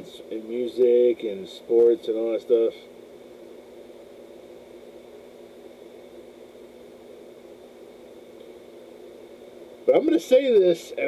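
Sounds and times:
faint constant tones: 0:00.0 - 0:11.0
low hum and hiss: 0:00.0 - 0:11.0.

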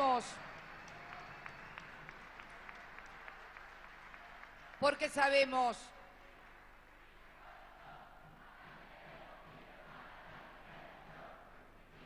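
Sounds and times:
scattered audience clapping: 0:00.0 - 0:08.0
crowd hum: 0:07.3 - 0:12.0.

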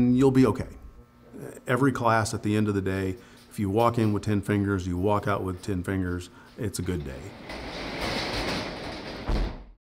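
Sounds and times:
roll-up door rattling: 0:06.7 - 0:09.7
door closing with heavy thud: 0:07.2 - 0:09.8.

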